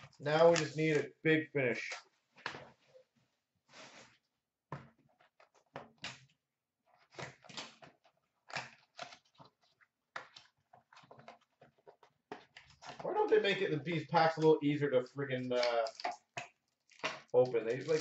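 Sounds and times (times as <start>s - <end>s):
foil wrapper rustling and ripping: 16.7s - 18.0s.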